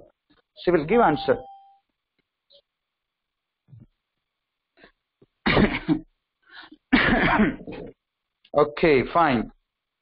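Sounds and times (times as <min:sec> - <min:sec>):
person coughing: 0:05.4 - 0:06.1, 0:06.9 - 0:08.0.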